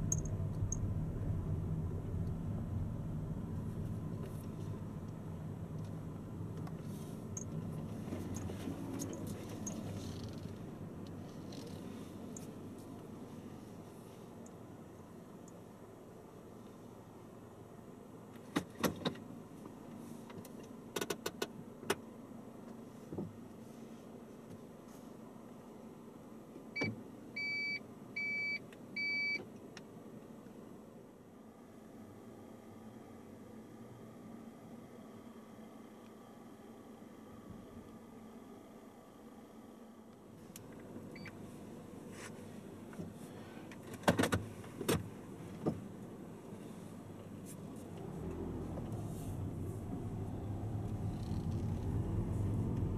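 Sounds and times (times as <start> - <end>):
car engine humming: 0.0 - 16.3, 31.4 - 52.9.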